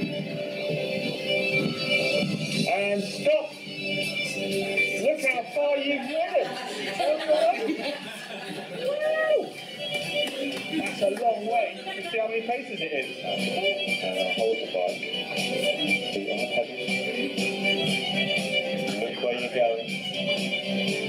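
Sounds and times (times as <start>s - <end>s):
background music over loudspeakers: 0.0s - 21.0s
person talking: 5.0s - 7.9s.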